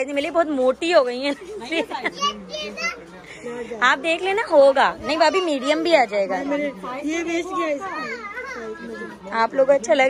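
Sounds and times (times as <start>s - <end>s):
woman talking: 0.0s - 2.1s, 3.7s - 10.0s
young child's high voice: 2.2s - 3.0s, 8.0s - 8.9s.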